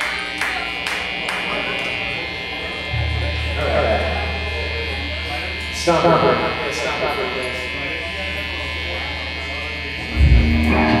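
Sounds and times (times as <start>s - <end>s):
faint crowd chatter: 0.0s - 11.0s
guitar amplifiers humming: 0.0s - 11.0s
loud low bass guitar note: 1.1s - 6.6s, 9.9s - 11.0s.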